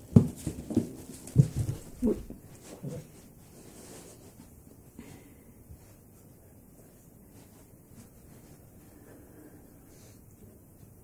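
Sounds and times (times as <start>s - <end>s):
cat paws thumping: 0.0s - 3.2s.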